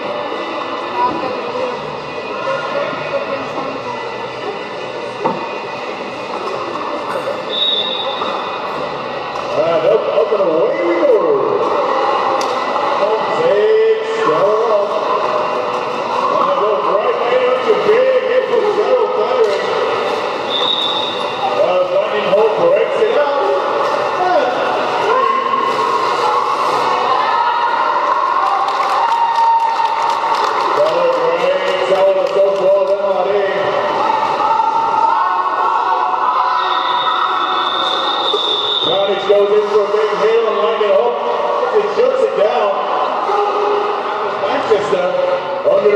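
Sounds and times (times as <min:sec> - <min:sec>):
high whistle-like tone: 0:07.5 - 0:08.4, 0:20.5 - 0:21.5, 0:36.5 - 0:39.1.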